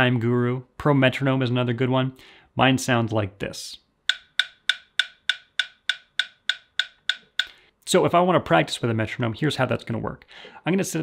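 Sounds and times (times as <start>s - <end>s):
metronome clicks: 4.1s - 7.6s.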